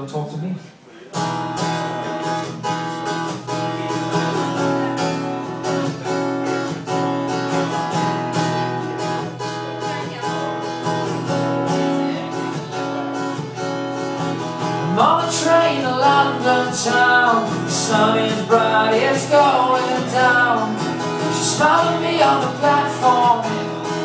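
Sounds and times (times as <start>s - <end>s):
acoustic guitar strumming chords: 1.1s - 24.0s.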